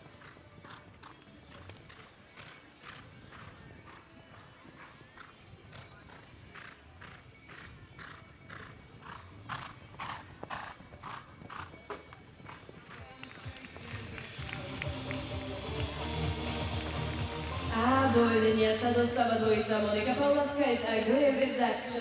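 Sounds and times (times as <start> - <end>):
horse hoofbeats cantering on sand: 0.0 - 16.0
music: 0.0 - 22.0.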